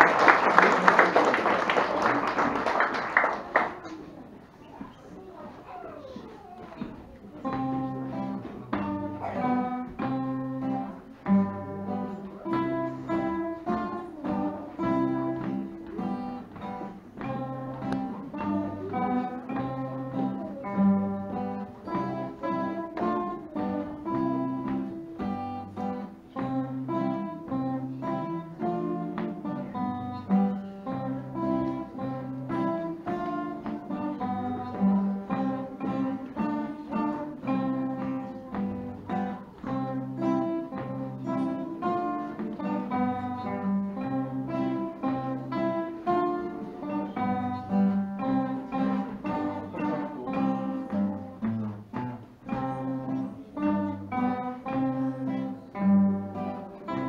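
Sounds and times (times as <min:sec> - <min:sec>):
acoustic guitars playing: 0:00.0 - 0:04.1, 0:06.8 - 0:57.0.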